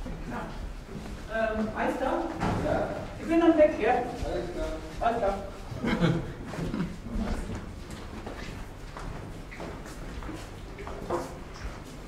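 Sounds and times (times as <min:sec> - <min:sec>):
footsteps in a hallway: 0:00.0 - 0:12.0.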